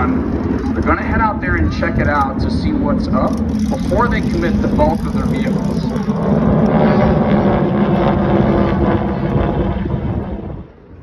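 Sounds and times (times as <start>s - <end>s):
loud engine drone: 0.0s - 11.0s.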